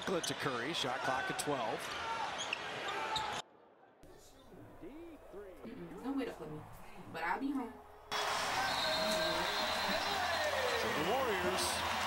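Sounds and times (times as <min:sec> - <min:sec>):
sports commentary: 0:00.0 - 0:03.4, 0:08.1 - 0:12.0
crowd noise: 0:07.4 - 0:12.0.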